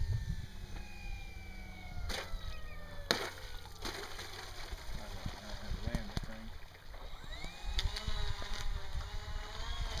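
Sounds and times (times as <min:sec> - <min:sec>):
model plane motors whining: 0:00.0 - 0:03.8, 0:06.8 - 0:10.0.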